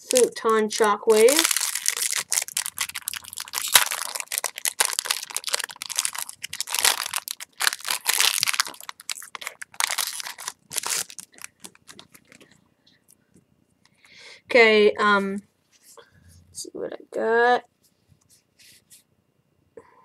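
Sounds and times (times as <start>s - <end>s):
foil wrapper crinkling: 0.0s - 12.5s.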